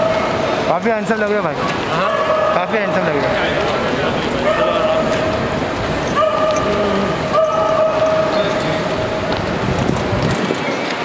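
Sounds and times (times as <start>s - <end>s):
people talking and calling out: 0.0s - 10.6s.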